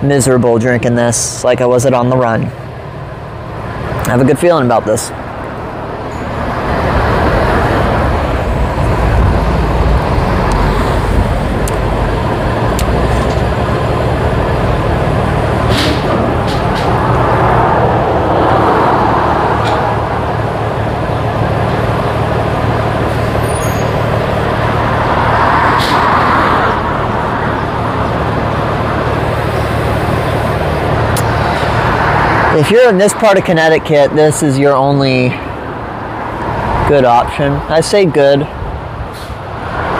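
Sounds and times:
road traffic rumble: 0.0 - 39.9
vehicles passing: 0.0 - 39.9.

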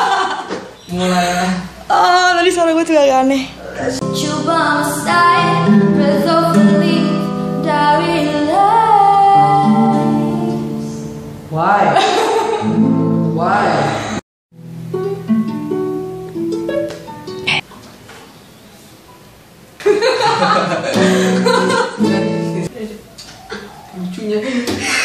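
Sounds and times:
girl laughing: 0.0 - 0.6, 11.9 - 12.8, 19.8 - 22.3
nylon-string guitar: 3.9 - 11.5, 12.6 - 18.0, 20.6 - 22.7
girl singing: 4.0 - 11.1.

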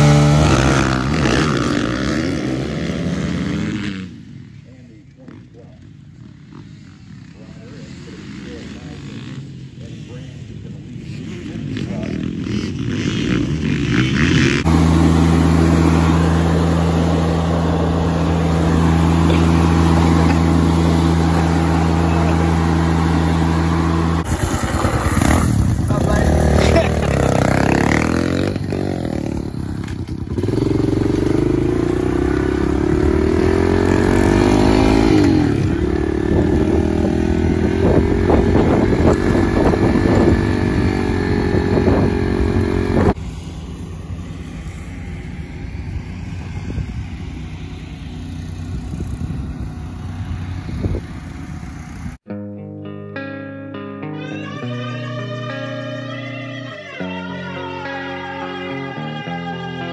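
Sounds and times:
small dirt bike revving: 0.0 - 52.3
dirt bike engine droning: 0.0 - 59.9.

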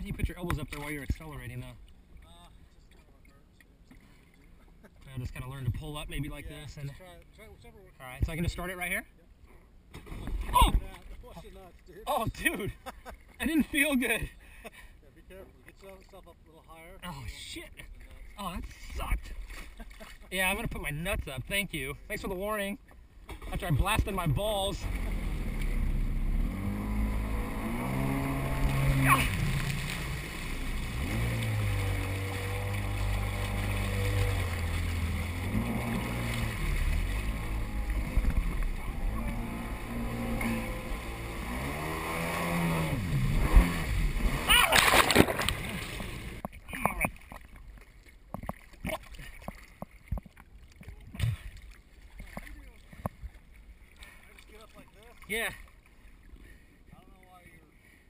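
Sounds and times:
water slapping and sloshing: 0.0 - 2.4, 17.7 - 21.4, 23.2 - 57.5
jet ski engine running: 24.8 - 46.4
loud splash: 24.8 - 46.4.

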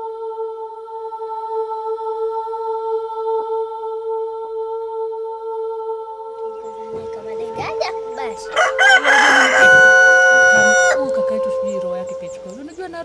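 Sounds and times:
sustained music tone: 6.3 - 13.0
rooster crowing: 6.6 - 11.8.

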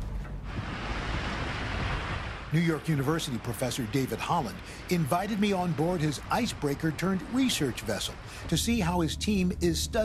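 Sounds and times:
low rumble: 0.0 - 10.0
water rushing along ship hull: 0.0 - 10.0.

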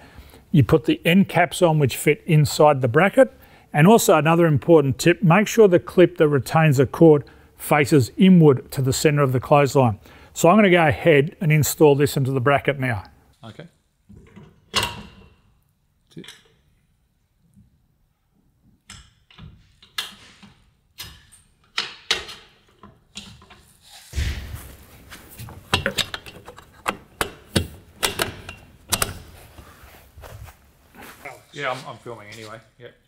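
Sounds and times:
metal parts clicking and knocking: 18.9 - 23.7, 25.7 - 29.4
heavy thump: 24.1 - 25.6.

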